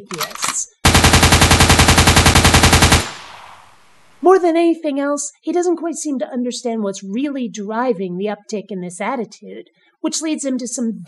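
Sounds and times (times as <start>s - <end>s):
rapid automatic gunfire: 0.8s - 4.2s.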